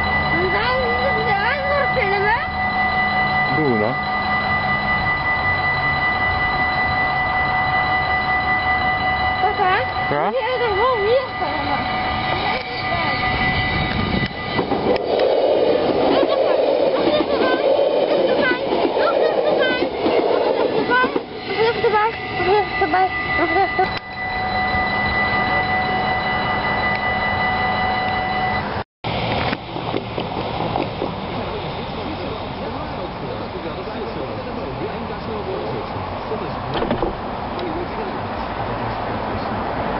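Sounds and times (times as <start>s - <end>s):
level crossing warning bell: 0.0s - 36.8s
train wheels rumbling on track: 0.0s - 39.9s.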